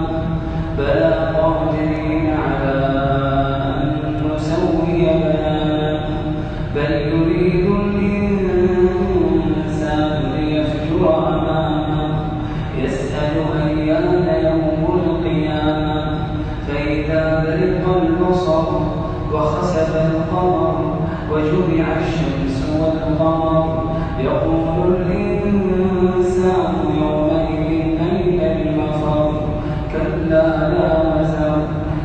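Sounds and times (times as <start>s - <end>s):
man chanting melodically: 0.0s - 32.0s.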